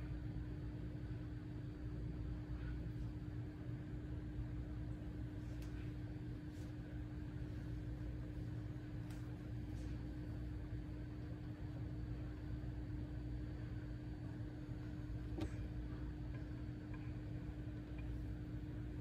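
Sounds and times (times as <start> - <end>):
steady low hum with pitched tone: 0.0 - 19.0.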